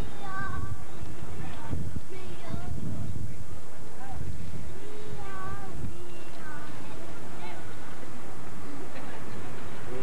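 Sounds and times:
wind rumble: 0.0 - 10.0.

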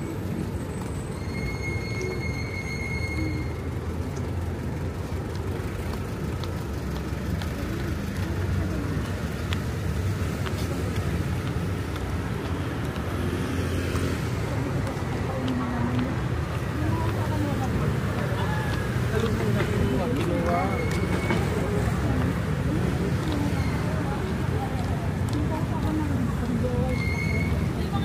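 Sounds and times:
rumble of passing vehicles: 0.0 - 28.0
high-pitched squeal: 0.8 - 3.7.

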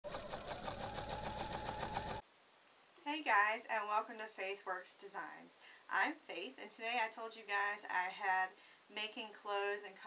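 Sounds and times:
sewing machine stitching clatter: 0.0 - 2.2.

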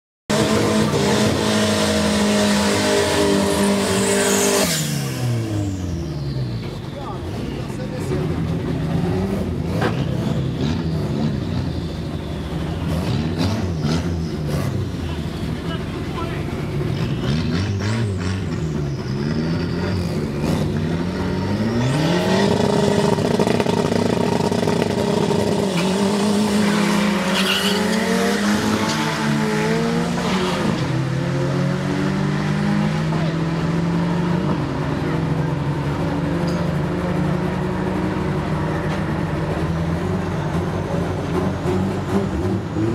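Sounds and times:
drag racing engines revving: 0.3 - 42.9
tyres squealing: 26.5 - 29.1.

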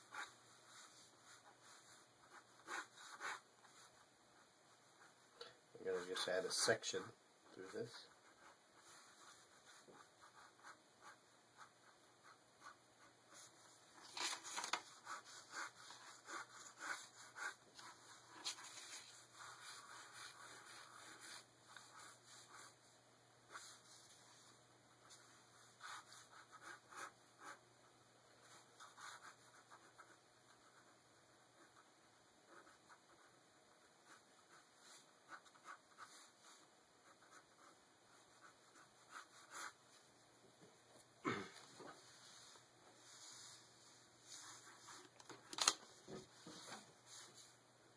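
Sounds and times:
ballpoint pen scratching on paper: 0.0 - 5.2, 7.6 - 22.8, 23.5 - 24.3, 25.1 - 27.6, 28.4 - 39.9.

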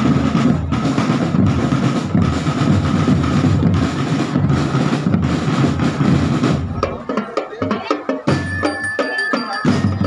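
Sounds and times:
bass drums: 0.0 - 8.9
cymbals: 0.0 - 10.0
tenor drums: 0.0 - 10.0.

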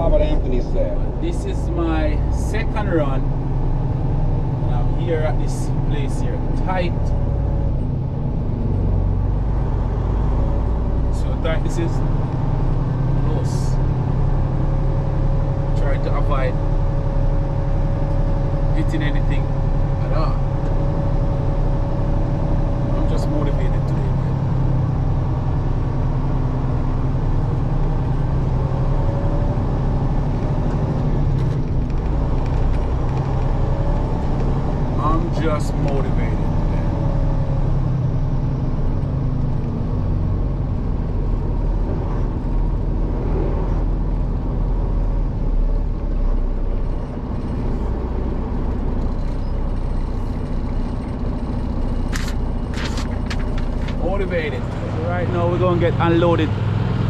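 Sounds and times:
diesel truck engine running: 0.0 - 57.0.

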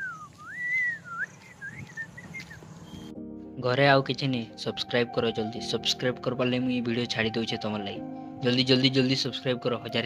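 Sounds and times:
man whistling: 0.0 - 3.1.

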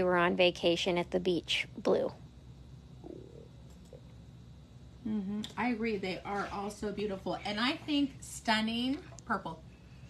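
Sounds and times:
woman speaking: 0.0 - 2.2, 5.4 - 9.7
faint low murmur: 1.7 - 10.0.

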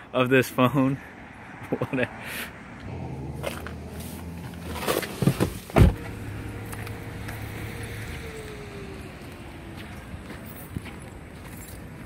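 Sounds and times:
car door thump: 5.2 - 6.1.

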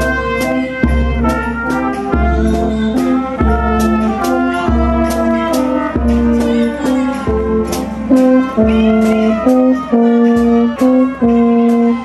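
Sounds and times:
brass band playing a march: 0.0 - 12.0
snare drums: 0.0 - 12.0.

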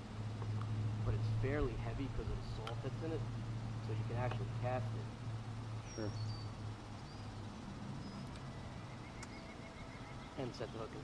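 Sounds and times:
low steady hum: 0.0 - 11.0
high bird chirps: 5.8 - 10.8.

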